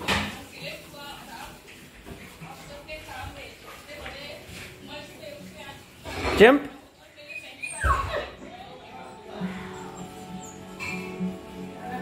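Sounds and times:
puppy whining: 7.2 - 8.4.

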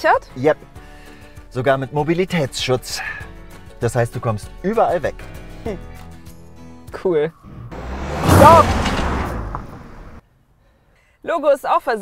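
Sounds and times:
car braking to a stop: 7.4 - 10.2.

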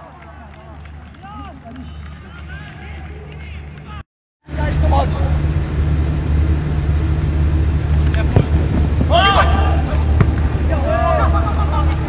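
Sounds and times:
low rumble: 4.5 - 12.0
football kick thud: 8.0 - 10.6.

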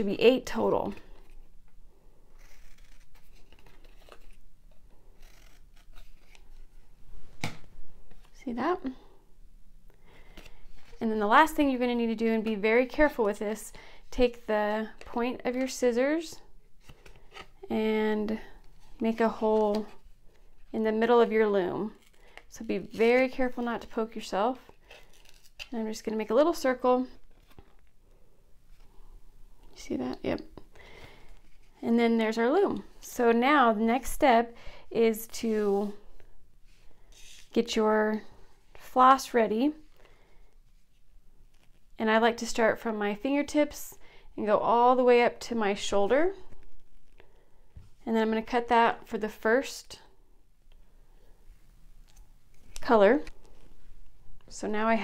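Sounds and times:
cardboard disc handling: 2.4 - 6.6
scissors cutting cardboard: 5.0 - 6.4.

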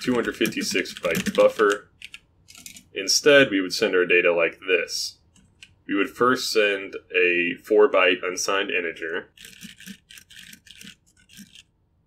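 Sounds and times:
typing on computer keyboard: 0.0 - 2.8, 9.4 - 11.6.

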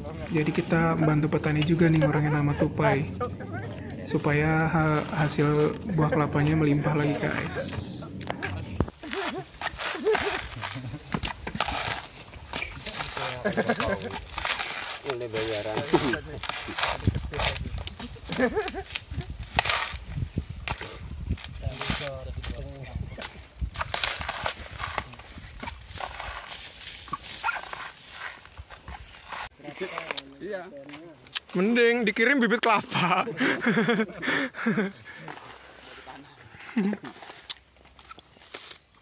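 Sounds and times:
coconut husk cracking: 0.0 - 31.9, 36.8 - 39.0
husk fibre ripping: 8.2 - 20.2, 23.8 - 28.5.

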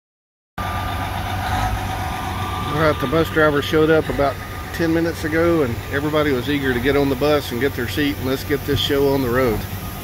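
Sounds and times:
diesel engine idling: 0.6 - 10.0.

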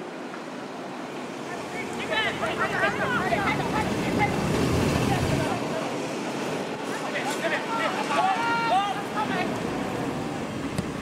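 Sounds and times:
steady outdoor noise: 0.0 - 11.0
short shouts: 7.2 - 9.5.

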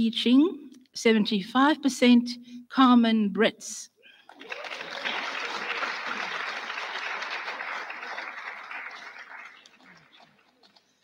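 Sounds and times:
audience applauding: 4.2 - 10.6.

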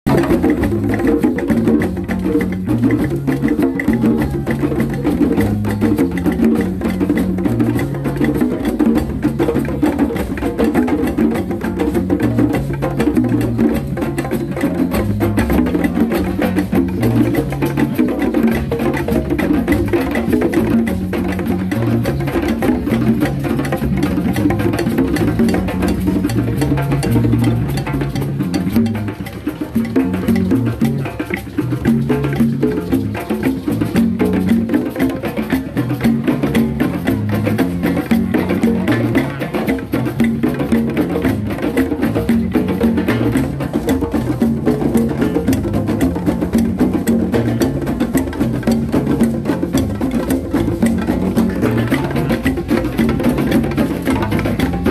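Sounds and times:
hand drums playing rhythm: 0.0 - 54.9
sharp wood-block-like hits: 0.1 - 54.9.

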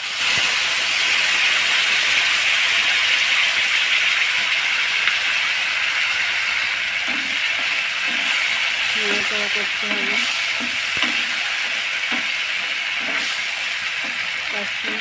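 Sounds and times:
paste sizzling in hot oil: 0.0 - 15.0.

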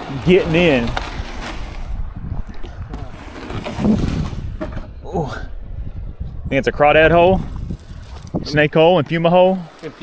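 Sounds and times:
canoe knocks and scrapes: 0.0 - 5.0
wind rumbling on microphone: 0.0 - 10.0.

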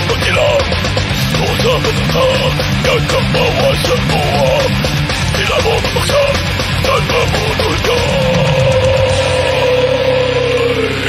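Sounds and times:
distorted electric guitar: 0.0 - 11.0
drums: 0.0 - 11.0.

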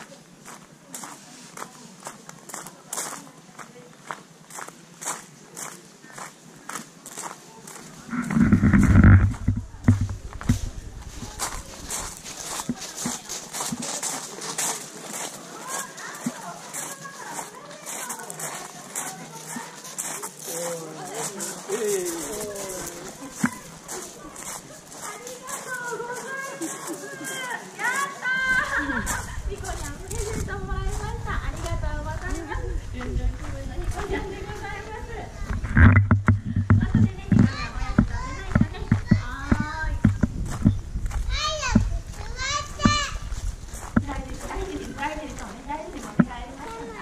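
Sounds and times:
footsteps on gravel: 0.0 - 47.0
people's voices in background: 0.0 - 47.0.

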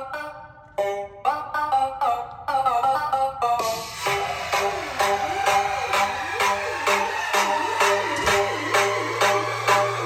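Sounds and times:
electronic dance music: 0.0 - 10.0
steady beat over held bass: 3.6 - 10.0.

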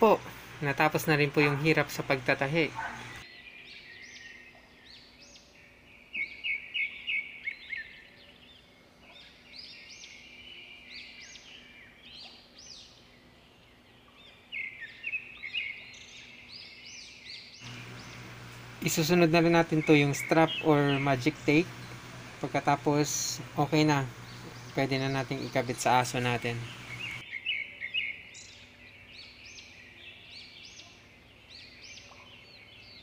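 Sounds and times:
faint steady hum: 0.0 - 3.2, 17.6 - 27.2
birds chirping: 0.0 - 33.0.

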